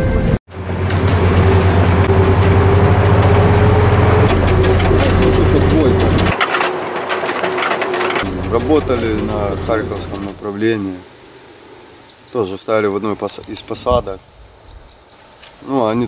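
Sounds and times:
armoured vehicle engine droning: 0:00.1 - 0:10.7
scattered clicks and knocks: 0:00.5 - 0:10.4
constant tone: 0:00.5 - 0:10.9
voices: 0:02.3 - 0:11.1.

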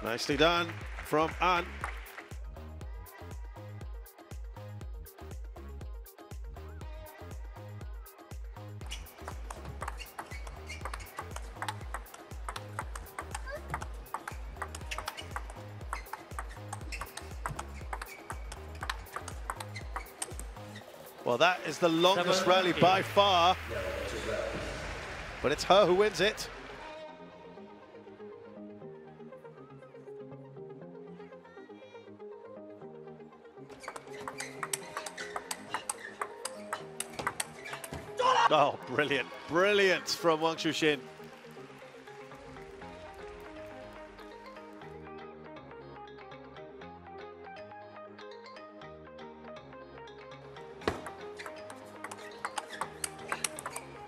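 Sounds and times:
background music: 0:00.0 - 0:54.0
table tennis ball clicking: 0:09.2 - 0:20.5, 0:33.8 - 0:38.0, 0:50.9 - 0:53.9.

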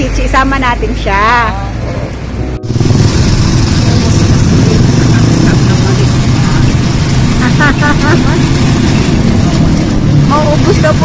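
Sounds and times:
road rumble: 0:00.0 - 0:11.0
small scooter engine running: 0:02.6 - 0:11.0.

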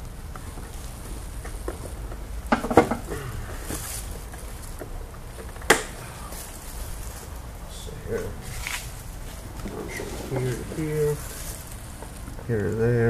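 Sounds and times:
low steady hum: 0:00.0 - 0:13.0
wiring connectors clattering: 0:00.4 - 0:13.0.

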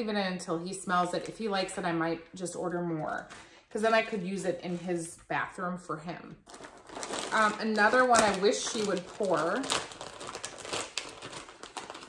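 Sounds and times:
plastic bag crinkling: 0:06.4 - 0:12.0.

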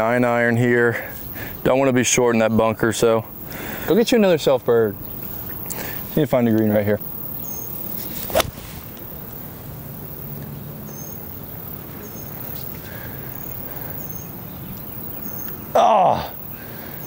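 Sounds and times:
high bird chirps: 0:07.2 - 0:08.0
golf club striking ball: 0:08.2 - 0:08.8.

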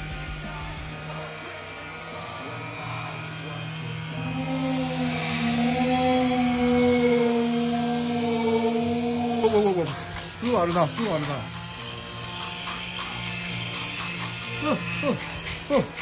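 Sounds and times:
steady droning tones: 0:00.0 - 0:16.0.

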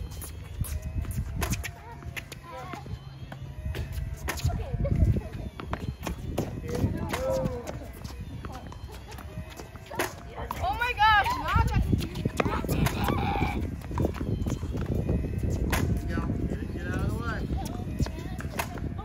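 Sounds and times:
tennis balls bouncing and struck: 0:00.1 - 0:04.5, 0:05.5 - 0:10.7, 0:11.9 - 0:16.1, 0:17.6 - 0:18.9
children calling and squealing: 0:00.1 - 0:15.6.

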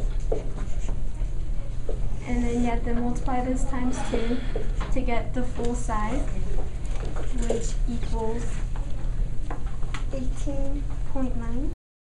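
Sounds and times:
low background hum: 0:00.0 - 0:11.8.

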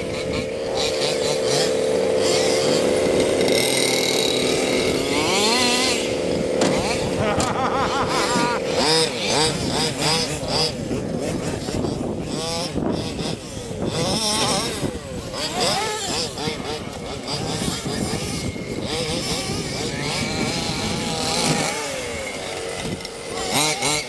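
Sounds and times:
radio-controlled car motors whining: 0:00.0 - 0:24.0.

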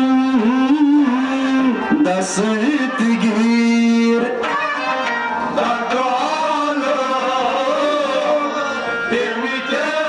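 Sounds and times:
held melodic line: 0:00.0 - 0:10.0.

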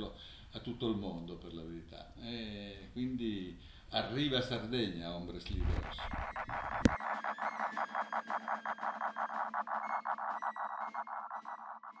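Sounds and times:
rapid electronic pulsing: 0:05.5 - 0:12.0.

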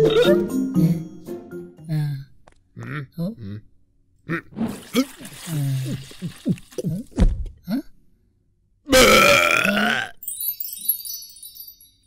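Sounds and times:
loud drawn-out burp: 0:08.9 - 0:10.2
faint twinkling chime: 0:10.2 - 0:12.0.

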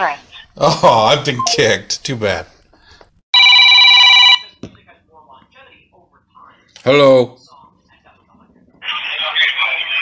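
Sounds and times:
telephone ringing: 0:03.3 - 0:04.6.

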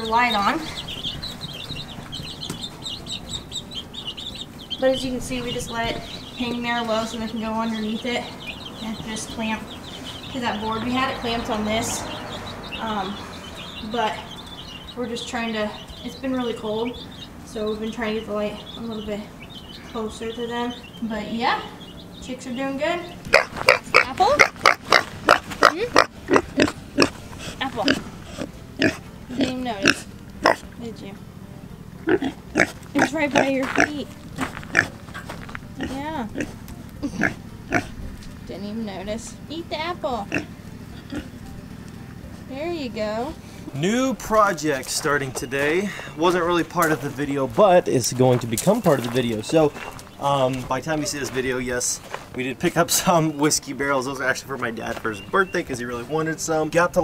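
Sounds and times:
chicks peeping: 0:00.0 - 0:31.2, 0:32.0 - 0:57.0
young pigs grunting: 0:23.0 - 0:30.8, 0:32.0 - 0:38.1, 0:40.1 - 0:41.5.

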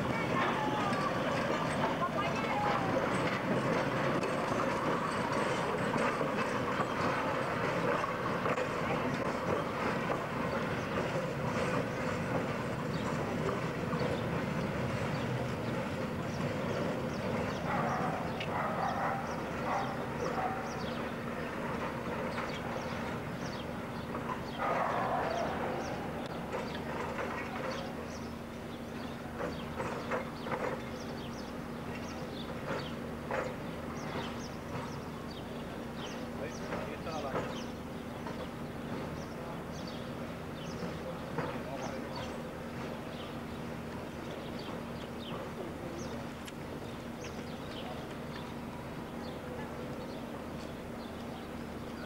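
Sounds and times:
people's voices: 0:00.0 - 0:52.0
streetcar rolling on track: 0:00.0 - 0:52.0.

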